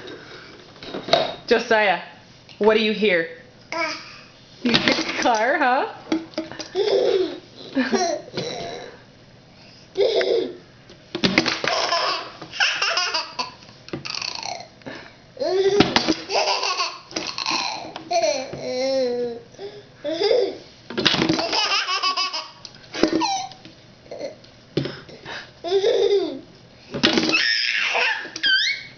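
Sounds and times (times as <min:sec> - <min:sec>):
baby laughing: 0:06.7 - 0:08.9, 0:10.0 - 0:10.6, 0:11.7 - 0:14.7, 0:15.4 - 0:19.4, 0:20.0 - 0:20.6, 0:21.4 - 0:24.4, 0:25.6 - 0:26.5, 0:27.3 - 0:28.9.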